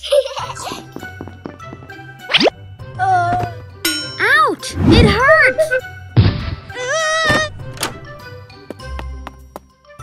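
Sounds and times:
background music: 0.0 - 10.0
cartoon thuds: 6.2 - 8.1.

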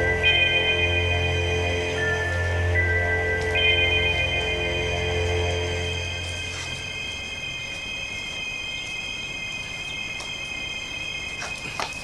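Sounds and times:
tense background music: 0.0 - 11.4
high-pitched whine: 0.0 - 12.0.

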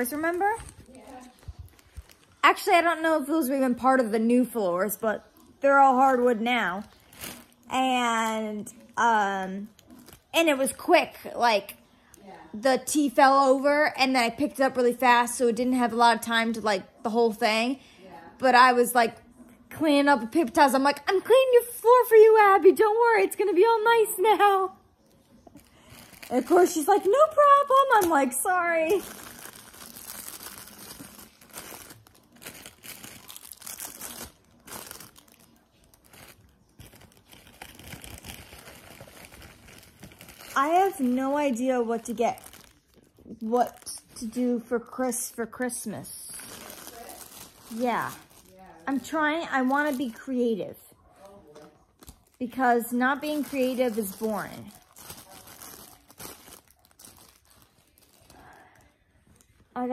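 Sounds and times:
crinkly wrapping crackling: 0.0 - 17.7, 20.2 - 59.9.

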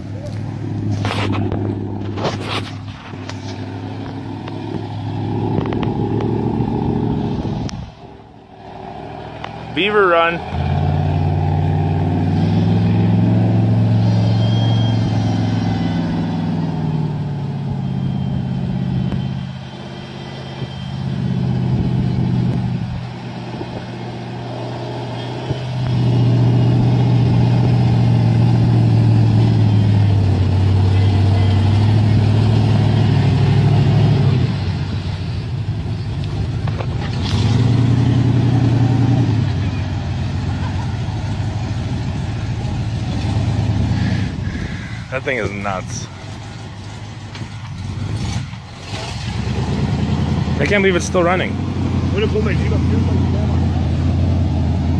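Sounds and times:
car engine revving: 0.0 - 54.9.

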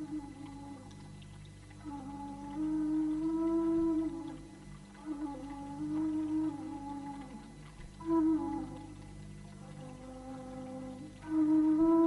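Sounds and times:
slow flute-like melody: 0.0 - 1.0, 1.8 - 12.0.

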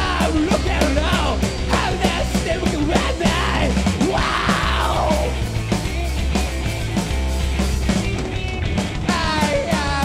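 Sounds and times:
rock band playing: 0.0 - 10.0
person shouting vocals: 3.2 - 5.3.

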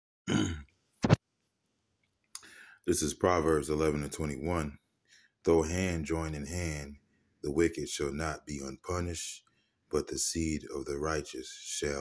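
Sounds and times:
man's throaty vocal sound: 0.3 - 0.6.

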